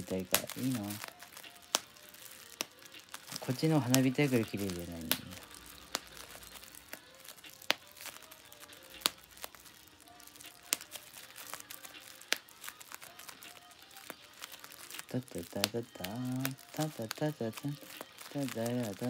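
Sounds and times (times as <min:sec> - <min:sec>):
bubble wrap popping: 0:00.0 - 0:19.0
plastic crinkling: 0:00.0 - 0:19.0.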